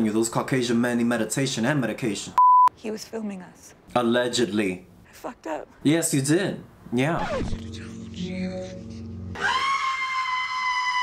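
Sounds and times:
low droning film score: 0:07.5 - 0:11.0
shrill high-pitched scream: 0:09.4 - 0:11.0.

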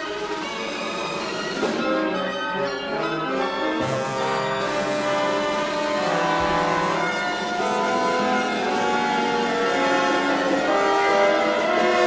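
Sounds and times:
orchestra playing loud chords: 0:00.5 - 0:12.0.

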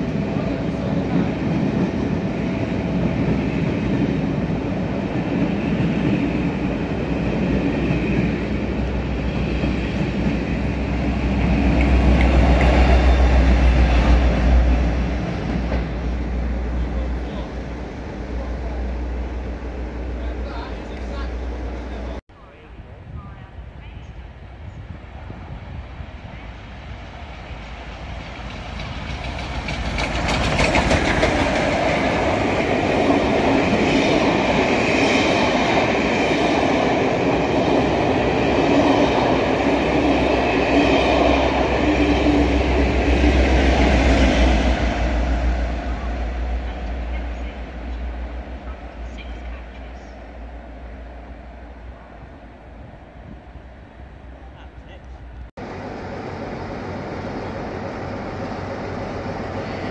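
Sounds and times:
train passing over rails: 0:00.0 - 0:59.9.

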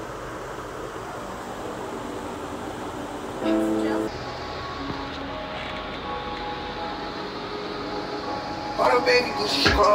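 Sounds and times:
steady machine noise with hum: 0:00.0 - 0:09.9.

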